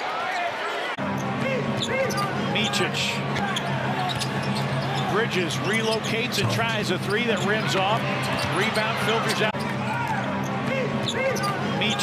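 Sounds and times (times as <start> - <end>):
sneaker squeaks: 3.4 - 7.6, 8.2 - 12.0.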